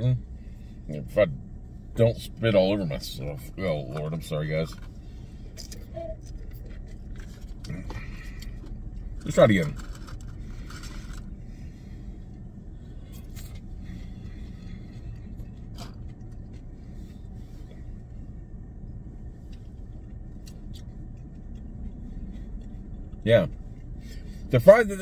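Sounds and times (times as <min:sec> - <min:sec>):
low car cabin hum: 0:00.0 - 0:25.0.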